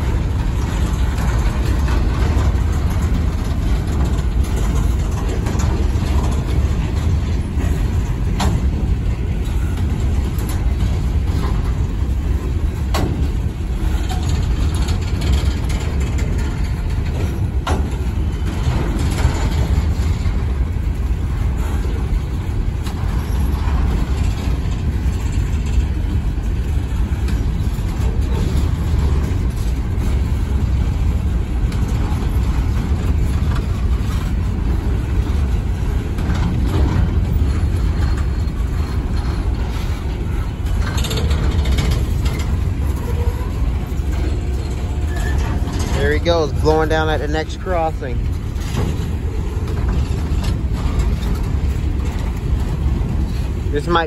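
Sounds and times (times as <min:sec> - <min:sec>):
metallic clanks and squeaks: 0:00.0 - 0:20.6, 0:22.8 - 0:31.1, 0:31.8 - 0:54.0
freight train wheels rumbling: 0:00.0 - 0:54.0.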